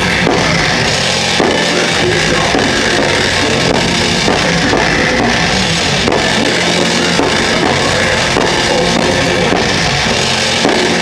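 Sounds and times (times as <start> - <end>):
death metal band playing live: 0.0 - 11.0
drum kit and cymbals: 0.0 - 11.0.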